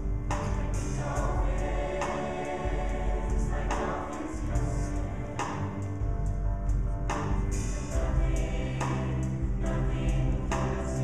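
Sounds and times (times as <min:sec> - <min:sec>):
choir singing in harmony: 0:00.0 - 0:06.4, 0:07.4 - 0:11.0
backing band: 0:00.0 - 0:11.0.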